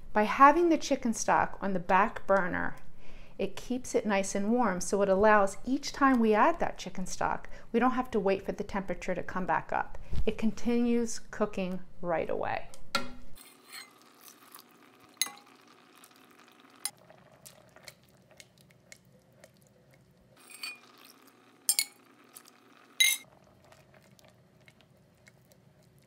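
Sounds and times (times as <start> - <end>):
wet stirring in pot: 13.4 - 26.0.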